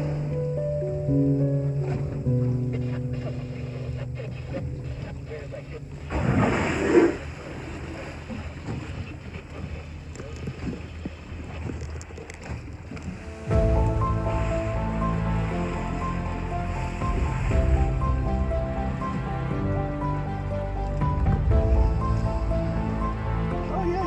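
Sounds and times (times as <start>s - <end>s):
background music: 0.0s - 6.7s, 13.0s - 24.0s
low water noise: 0.0s - 24.0s.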